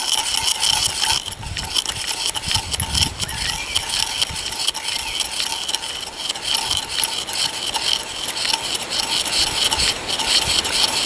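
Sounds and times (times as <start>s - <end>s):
drill bit boring into wood: 0.0s - 11.0s.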